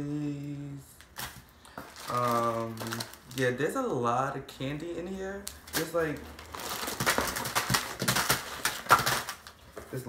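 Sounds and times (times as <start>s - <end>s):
plastic packets rustling in a box: 1.0s - 3.6s, 5.4s - 10.0s.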